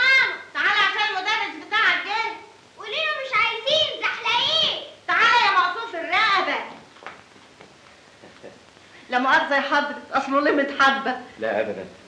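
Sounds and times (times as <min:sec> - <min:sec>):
child's wavering vocal phrases: 0:00.0 - 0:00.5.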